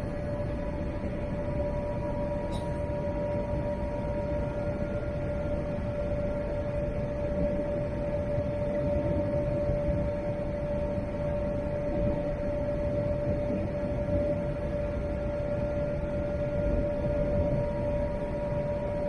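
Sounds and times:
airflow rush in cabin: 0.0s - 19.0s
constant humming tone: 0.0s - 19.0s.

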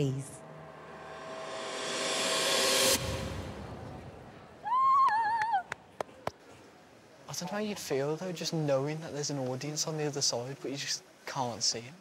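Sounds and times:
rising whoosh: 0.2s - 4.7s.

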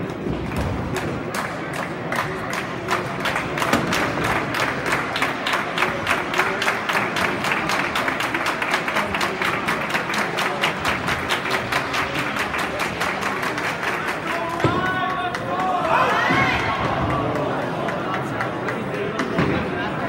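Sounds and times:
rhythmic fast clapping: 0.0s - 19.4s
crowd chatter: 0.0s - 20.0s.

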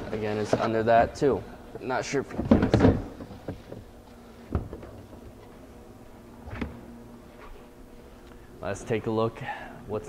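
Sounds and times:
faint room hum: 0.0s - 10.0s
cargo floor panel knocking shut: 2.4s - 3.2s.

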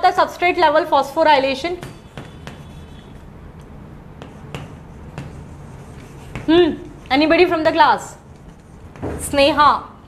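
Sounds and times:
chalk tapping on chalkboard: 1.8s - 9.2s.

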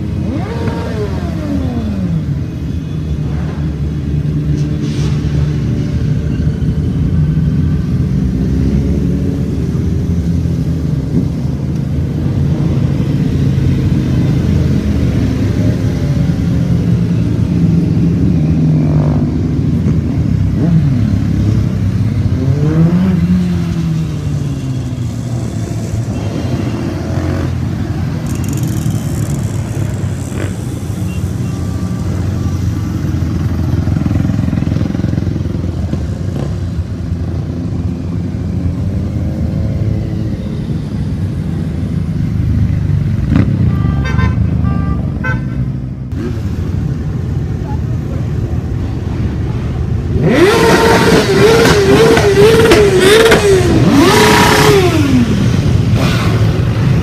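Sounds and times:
motorcycles riding past: 0.0s - 4.5s, 5.2s - 57.0s.

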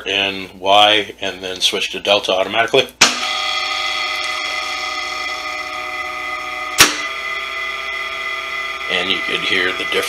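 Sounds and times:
electric motor humming: 3.3s - 10.0s.

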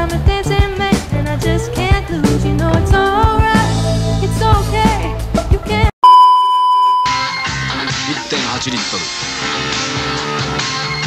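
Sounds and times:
music: 0.0s - 5.9s, 7.1s - 11.0s
high-pitched test tone beep: 6.0s - 7.3s.

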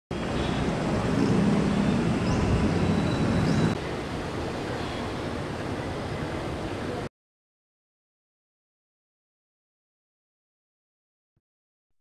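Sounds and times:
low rumbling hiss: 0.1s - 7.1s.

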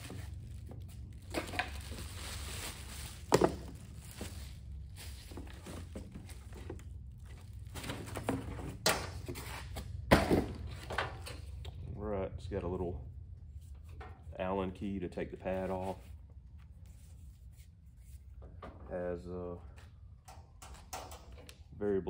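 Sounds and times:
plastic wrap rustling: 0.0s - 8.5s
low steady hum: 0.0s - 22.0s.

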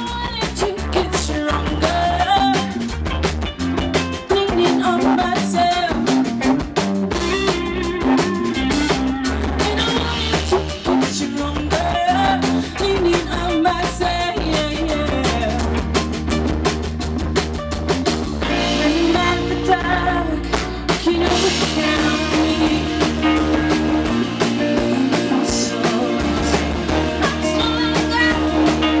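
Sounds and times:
bass guitar: 0.0s - 29.0s
drum kit beat: 0.0s - 29.0s
electric guitars: 0.0s - 29.0s.

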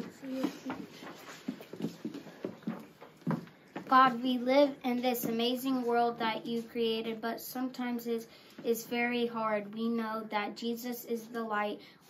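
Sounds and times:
faint knocks and rustles: 0.0s - 6.7s.

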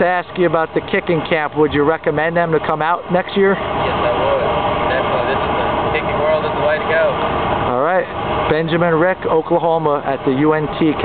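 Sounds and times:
steady rushing noise: 0.0s - 11.0s.

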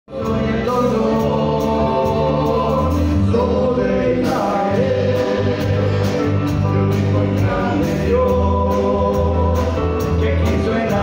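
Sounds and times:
band with steady beat: 0.1s - 11.0s
group of voices singing: 0.1s - 11.0s.

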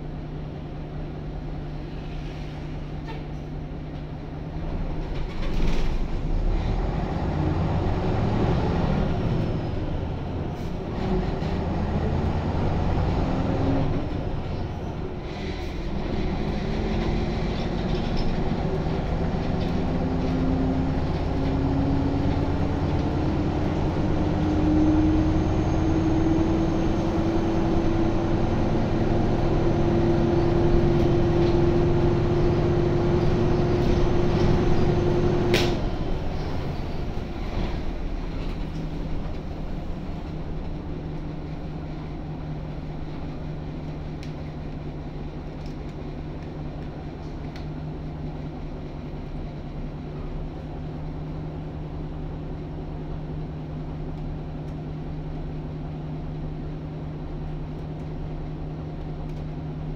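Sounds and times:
bus diesel engine accelerating: 0.0s - 59.9s.

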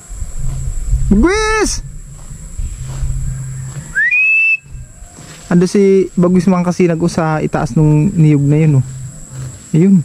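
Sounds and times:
bird of prey whistled call: 3.4s - 5.4s.

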